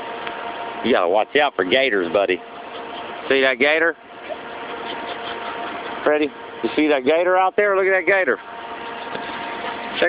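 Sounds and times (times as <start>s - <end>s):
motor humming: 0.0s - 10.0s.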